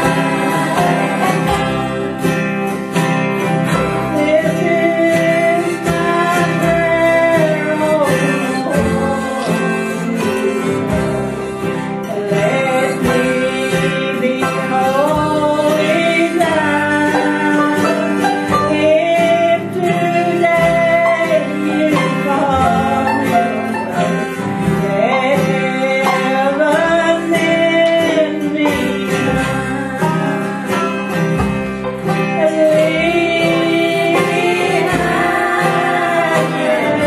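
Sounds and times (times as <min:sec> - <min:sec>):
woman singing: 0:00.0 - 0:02.3, 0:03.7 - 0:37.0
harmonica: 0:00.0 - 0:37.0
picked banjo: 0:00.0 - 0:37.0
strummed acoustic guitar: 0:00.0 - 0:37.0.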